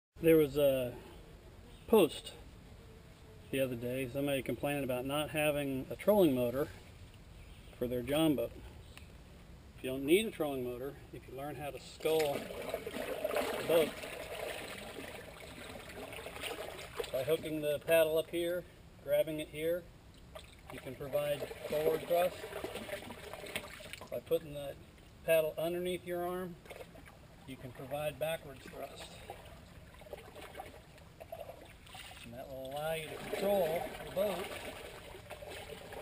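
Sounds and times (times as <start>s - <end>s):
water churning around a paddle: 11.9s - 17.2s, 20.4s - 24.1s, 26.6s - 36.0s.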